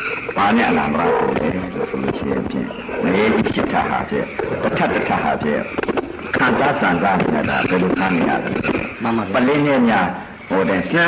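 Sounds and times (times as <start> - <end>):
person talking: 0.4 - 11.0.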